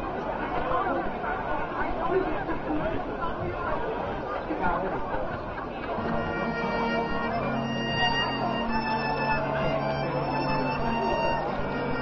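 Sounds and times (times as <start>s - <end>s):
marching band holding chords: 6.0s - 12.0s.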